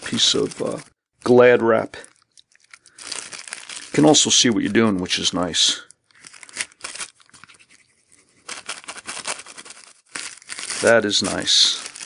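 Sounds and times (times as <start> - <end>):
plastic cling wrap crinkling: 0.0 - 12.0.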